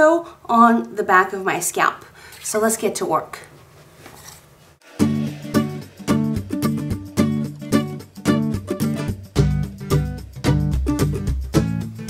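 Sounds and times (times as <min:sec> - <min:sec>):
strummed acoustic guitar: 0:04.8 - 0:12.0.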